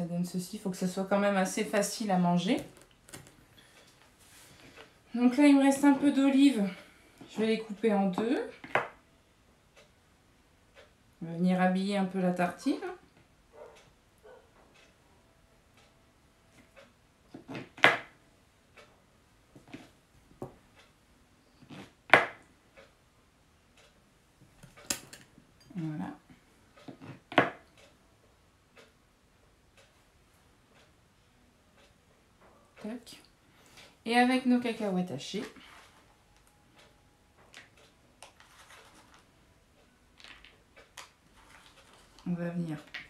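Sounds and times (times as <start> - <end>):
soft ticks: 14.8 - 15.0, 23.8 - 24.0, 27.7 - 28.0, 28.8 - 29.0, 29.7 - 30.0, 30.7 - 31.0, 31.8 - 32.0, 36.3 - 39.2.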